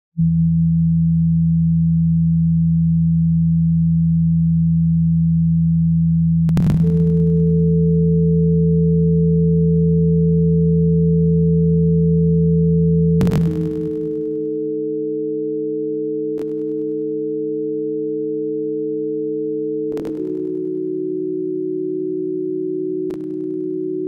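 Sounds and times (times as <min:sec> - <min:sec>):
low sine-wave tone: 0:00.2 - 0:24.0.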